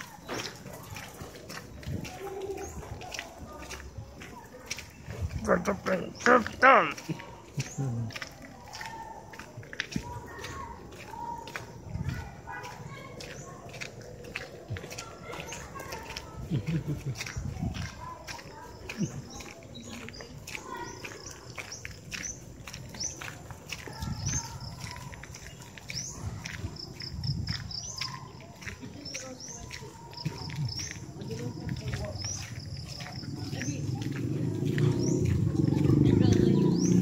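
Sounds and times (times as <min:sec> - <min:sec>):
birds chirping: 0:00.0 - 0:37.0
children chattering and shouting: 0:00.0 - 0:37.0
footsteps on a path: 0:00.0 - 0:37.0.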